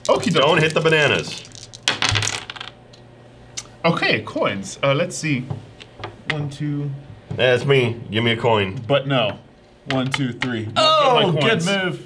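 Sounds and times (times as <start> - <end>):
dice clattering on wooden table: 0.0 - 2.8.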